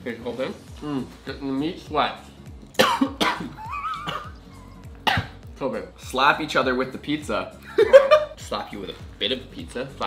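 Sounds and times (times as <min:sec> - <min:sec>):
man coughing: 0:02.8 - 0:05.4.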